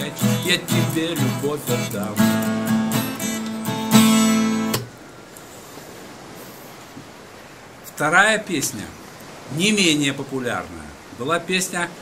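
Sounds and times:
acoustic guitar strumming chords: 0:00.0 - 0:04.9
faint hiss: 0:00.0 - 0:12.0.

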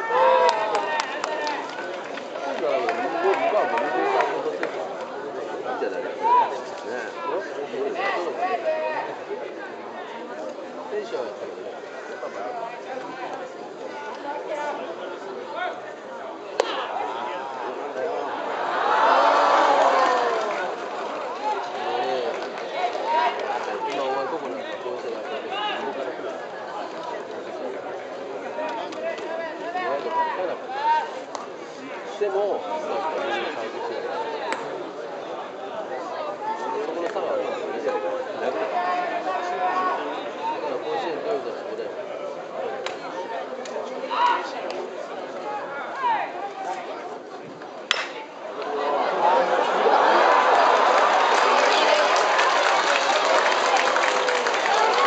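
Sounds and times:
spectators chattering: 0:00.0 - 0:55.0
metal bat hitting ball: 0:47.9 - 0:48.2.

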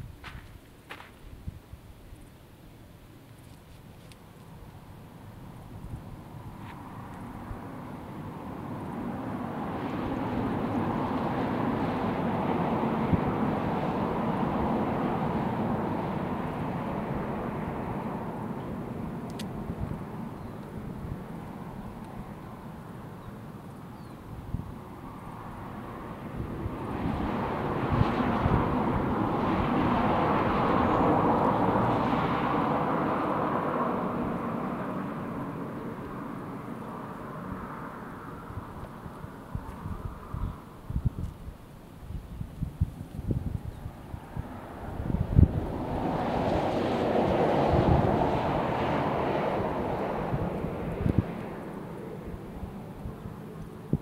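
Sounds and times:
shoes and hands scuffing rock: 0:00.2 - 0:01.3.

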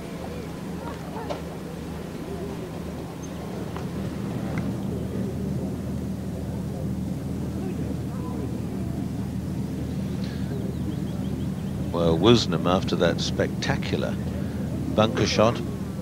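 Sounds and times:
faint murmuring voices: 0:00.0 - 0:16.0
steady low drone: 0:00.0 - 0:16.0.

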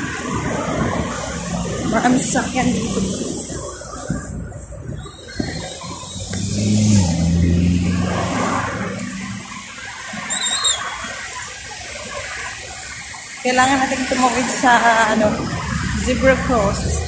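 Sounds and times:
car engines passing: 0:00.0 - 0:17.0
low engine drone: 0:00.0 - 0:17.0
high squeal: 0:05.0 - 0:06.9, 0:10.1 - 0:11.4.

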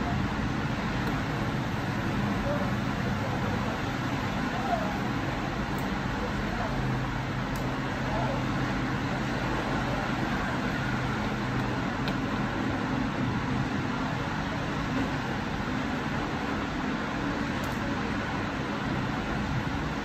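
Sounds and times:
faint distant voices: 0:00.0 - 0:16.5
background rumble and hiss: 0:00.0 - 0:20.0.

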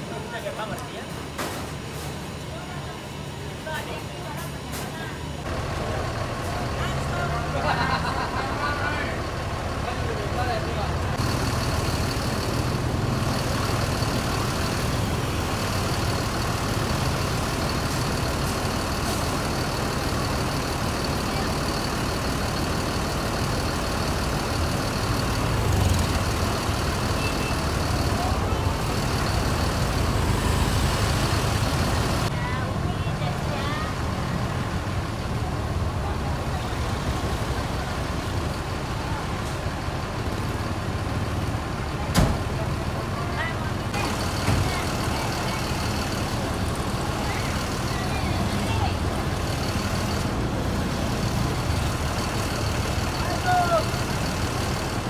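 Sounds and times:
bus diesel engines idling: 0:00.0 - 0:55.0.

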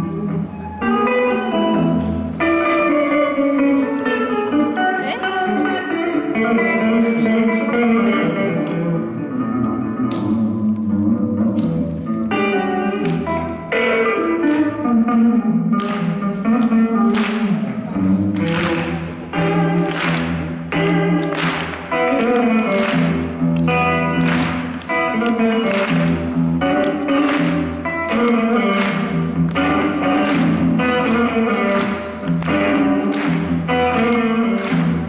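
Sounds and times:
electric guitar and bass playing: 0:00.0 - 0:35.0.

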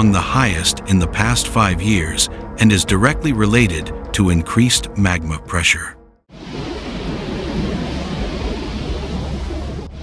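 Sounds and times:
volcano deep rumbling: 0:06.3 - 0:10.0.

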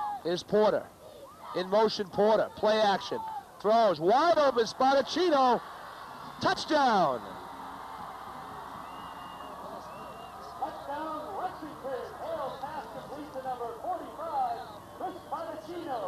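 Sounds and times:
steady background hiss: 0:00.0 - 0:16.0
crowd cheering and shouting: 0:02.4 - 0:16.0.

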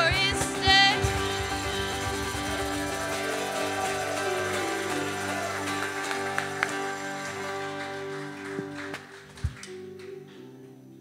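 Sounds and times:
keyboard and acoustic guitar chord: 0:00.0 - 0:08.9.

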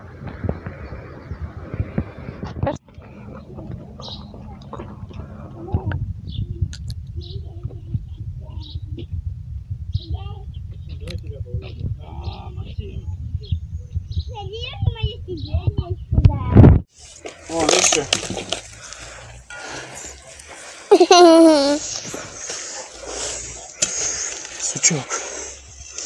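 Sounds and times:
wind rumbling on microphone: 0:00.0 - 0:16.9
young children babbling: 0:20.9 - 0:21.9.

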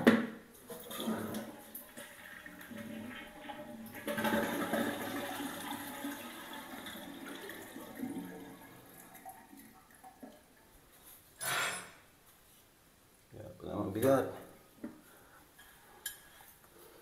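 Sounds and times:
toilet flushing: 0:00.6 - 0:10.6.

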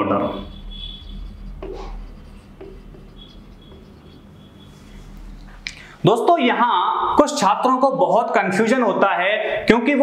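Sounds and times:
marker writing on whiteboard: 0:00.3 - 0:05.5.

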